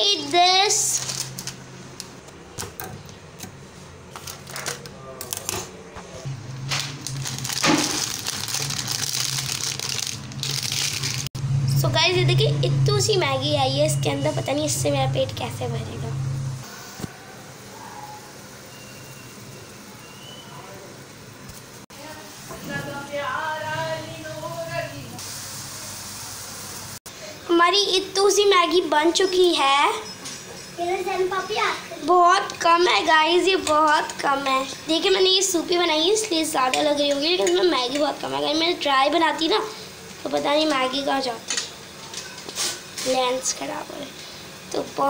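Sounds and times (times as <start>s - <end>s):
plastic packet crinkling: 0.8s - 1.6s, 6.8s - 11.3s
water boiling and bubbling: 6.9s - 11.4s.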